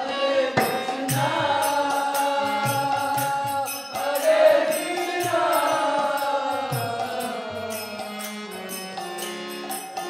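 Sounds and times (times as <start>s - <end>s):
group chanting: 0.0s - 7.8s
keyboard drone: 0.0s - 10.0s.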